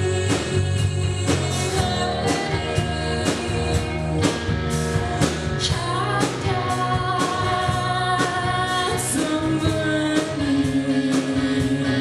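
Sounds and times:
rock band playing live: 0.0s - 12.0s
woman singing: 0.0s - 12.0s.

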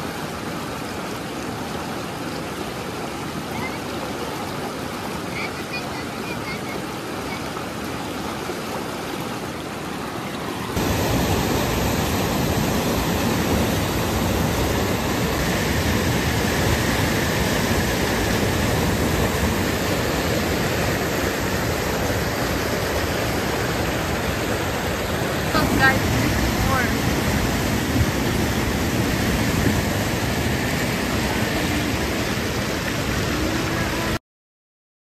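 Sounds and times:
river water flowing over stones: 0.0s - 34.2s
waterfall rushing: 0.0s - 34.2s.

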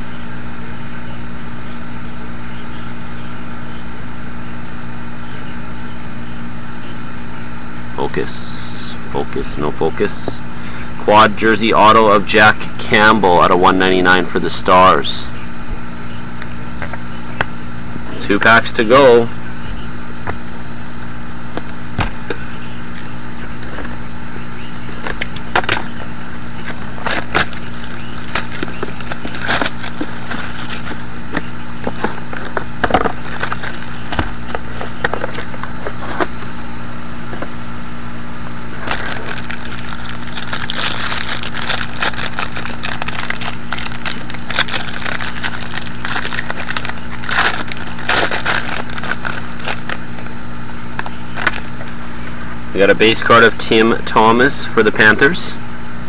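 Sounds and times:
steady hum: 0.0s - 56.0s
foil wrapper crinkling and tearing: 24.9s - 36.2s, 38.8s - 50.3s, 51.0s - 52.0s.

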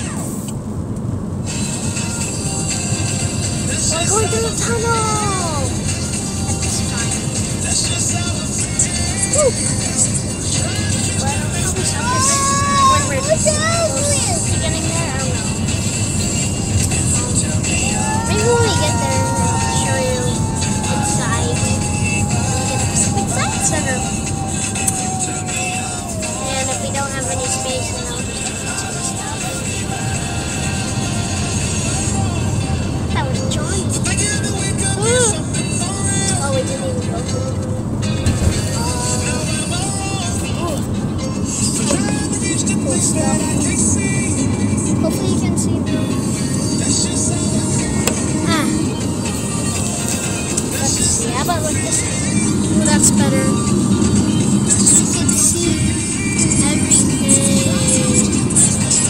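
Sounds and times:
music with singing: 0.0s - 59.0s
tyres on wet road: 0.0s - 59.0s.

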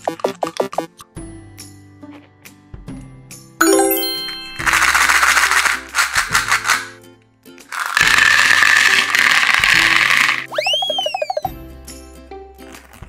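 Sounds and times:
candies clattering into plastic tray: 4.6s - 7.0s, 7.7s - 10.5s.

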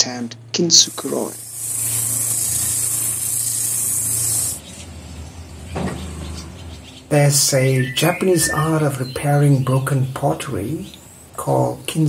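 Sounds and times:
motor humming: 0.4s - 7.0s
sanding drum grinding rubber: 0.9s - 4.6s.

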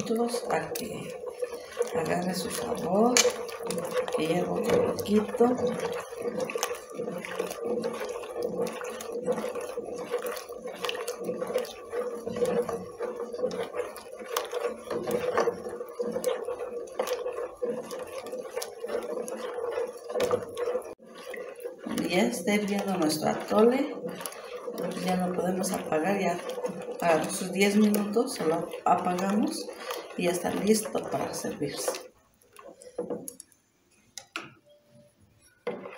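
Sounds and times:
spoon scraping metal pot: 0.0s - 33.4s, 34.0s - 35.9s.

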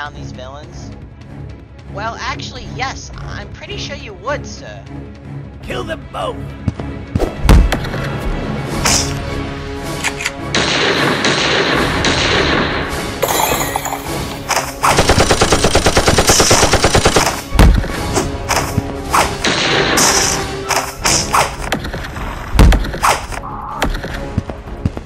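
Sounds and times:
action background music: 0.0s - 25.0s
gunshots: 10.5s - 13.0s, 14.4s - 21.8s
automatic gunfire burst: 14.9s - 17.4s.

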